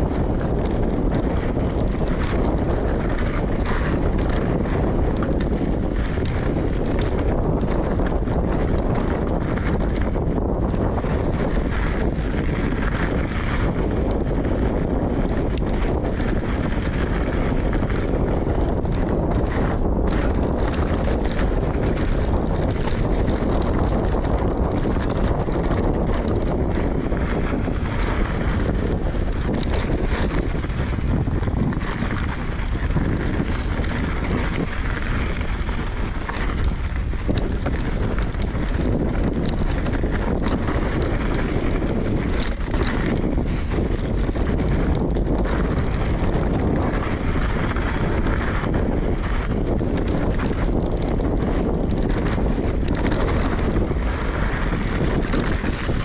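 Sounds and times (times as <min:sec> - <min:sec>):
bike clicks and rattles: 0:00.0 - 0:56.0
tyres rolling on gravel: 0:00.0 - 0:56.0
wind rushing over microphone: 0:00.0 - 0:56.0.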